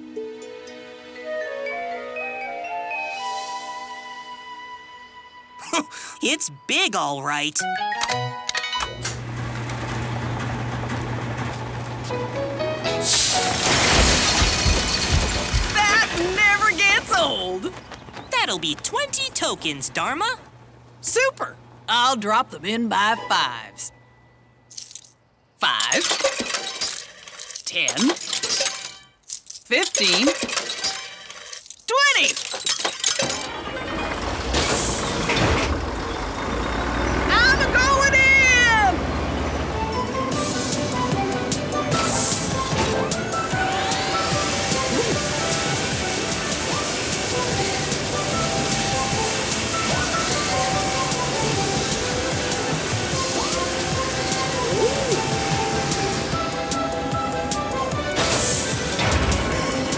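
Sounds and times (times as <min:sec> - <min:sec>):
heavy engine rumbling: 0:09.0 - 0:23.0, 0:33.3 - 0:59.9
machine humming with hiss: 0:40.4 - 0:59.9.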